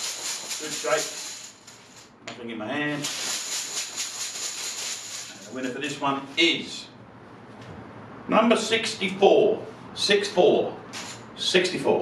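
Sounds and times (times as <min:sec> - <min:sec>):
tokens rattling in cloth bag: 0:00.0 - 0:02.1, 0:03.0 - 0:05.8.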